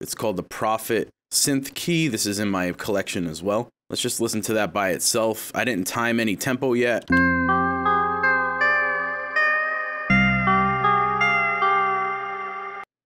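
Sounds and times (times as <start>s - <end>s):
plucked synth loop: 7.1s - 12.8s
held synth bass note: 7.1s - 12.9s.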